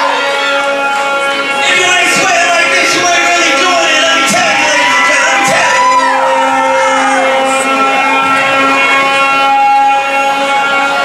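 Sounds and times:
electronic drone with pitch glides: 0.0 - 11.0.

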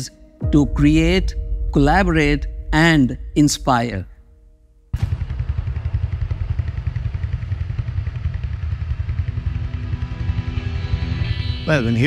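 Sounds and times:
motorcycle engine idling: 5.0 - 10.9.

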